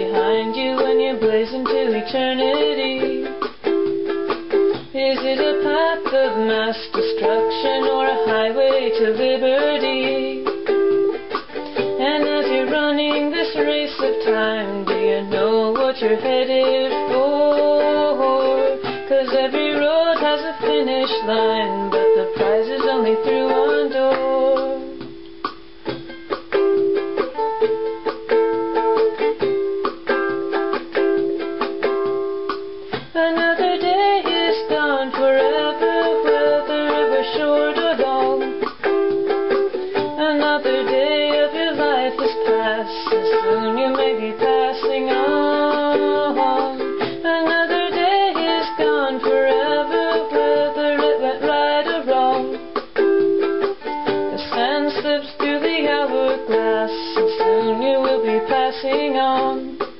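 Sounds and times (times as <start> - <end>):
ukulele strumming chords: 0.0 - 59.9.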